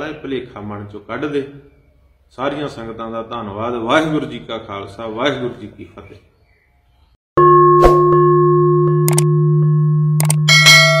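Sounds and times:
quick clicks: 9.1 - 9.3
bright bell chime: 10.4 - 11.0.

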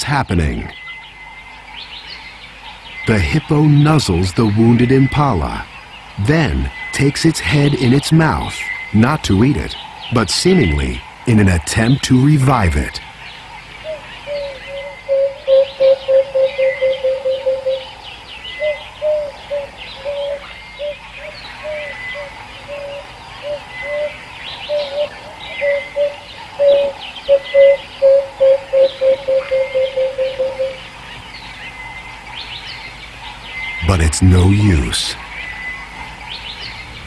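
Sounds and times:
birds chirping and twittering: 0.0 - 37.0
bird low hooting note: 13.8 - 31.0.

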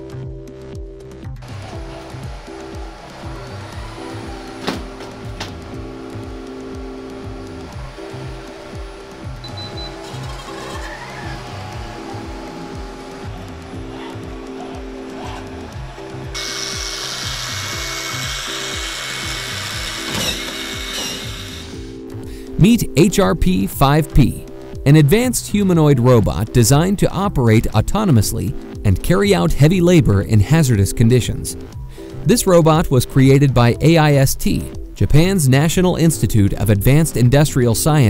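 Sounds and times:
background music with beat: 0.0 - 38.0
high whirring machinery hiss: 1.4 - 22.2.

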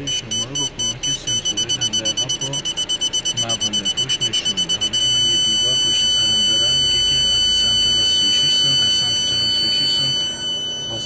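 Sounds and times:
parking sensor buzzer beeping: 0.0 - 11.0.

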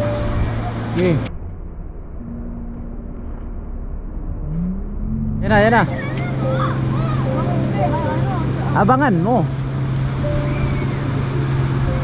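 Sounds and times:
faint motor hum: 0.0 - 12.0
low rumble: 0.0 - 12.0.

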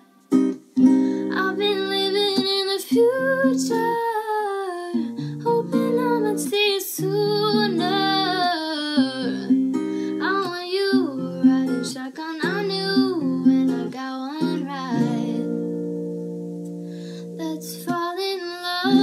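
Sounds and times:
acoustic guitar chords: 0.0 - 19.0
woman singing: 1.2 - 15.9, 17.2 - 19.0.

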